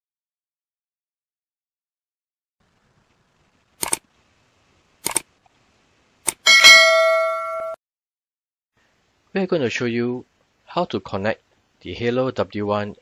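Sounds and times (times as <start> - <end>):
short sharp clicks: 3.8 - 4.0, 5.0 - 5.3
bell-like ding: 6.5 - 7.8.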